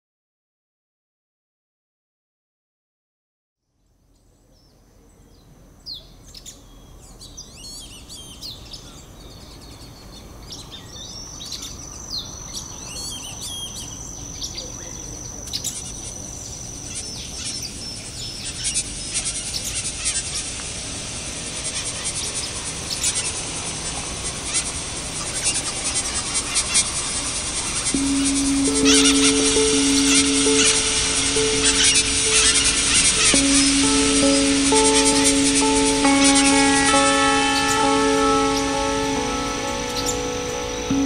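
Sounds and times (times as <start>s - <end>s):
dense high chattering: 25.6s - 41.0s
high whistle: 28.0s - 41.0s.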